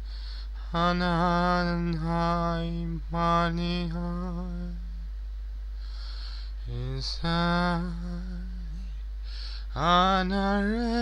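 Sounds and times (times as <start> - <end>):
steady low hum: 0.0 - 11.0
solo voice chant-like singing: 0.6 - 5.0, 6.6 - 9.0, 9.7 - 11.0.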